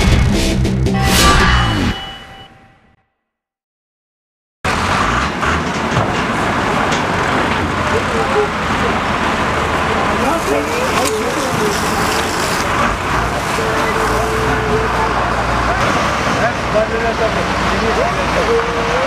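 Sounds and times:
large fire burning: 4.7s - 14.6s
vehicle engines running: 4.7s - 19.0s
people calling out: 13.4s - 15.6s.

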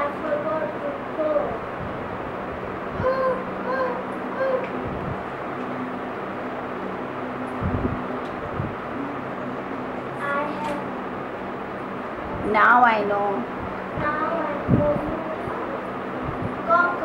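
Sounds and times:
steady low hum: 0.0s - 17.0s
child making animal calls: 3.0s - 4.7s.

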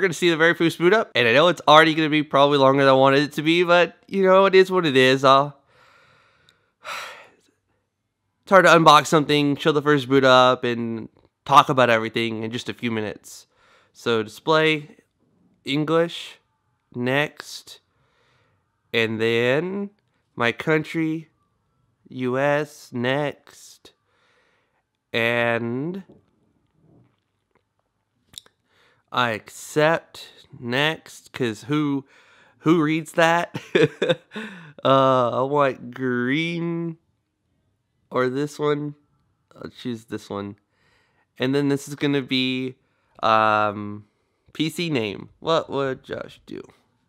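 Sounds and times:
man breathing: 5.6s - 7.5s, 13.5s - 14.0s, 17.9s - 18.8s, 24.0s - 24.9s, 28.6s - 29.1s, 32.0s - 32.6s, 34.2s - 34.8s, 40.6s - 41.4s, 42.8s - 43.2s.

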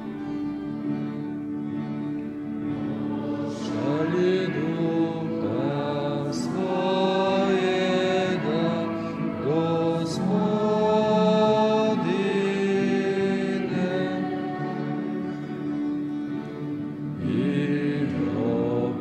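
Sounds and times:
instrumental accompaniment: 0.0s - 19.0s
slow hymn singing: 0.0s - 19.0s.

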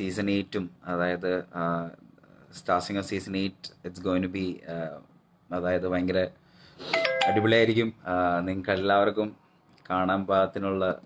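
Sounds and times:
person speaking: 6.8s - 11.0s
electronic chime: 7.0s - 7.7s.

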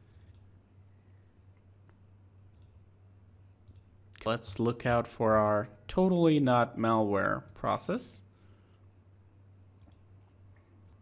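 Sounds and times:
low steady hum: 0.0s - 11.0s
faint computer mouse clicks: 0.1s - 0.5s, 9.8s - 11.0s.

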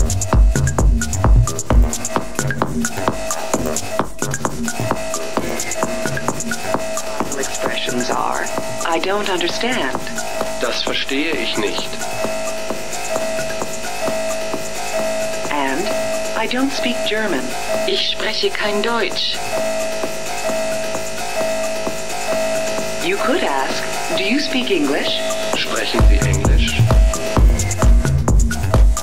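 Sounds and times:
bass kick drum: 0.0s - 10.6s, 25.6s - 29.0s
pulsing synth note: 4.5s - 29.0s.

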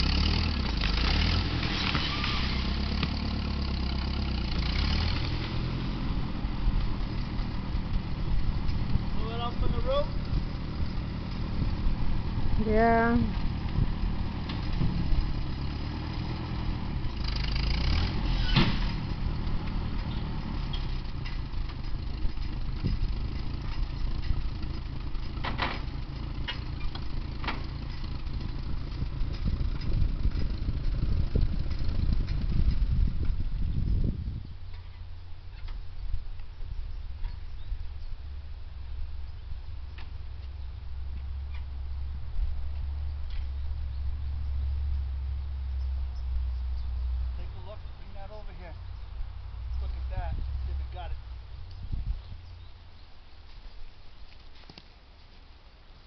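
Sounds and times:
tractor engine running: 0.0s - 56.0s.

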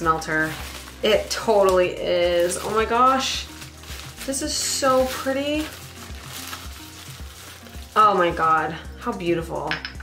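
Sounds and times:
bubble wrap crinkling: 0.0s - 8.9s
soft background music: 0.0s - 10.0s.

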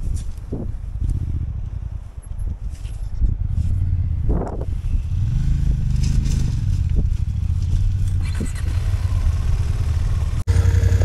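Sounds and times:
motorcycle engine running: 5.0s - 11.0s
tyres on loose gravel: 5.5s - 9.3s.

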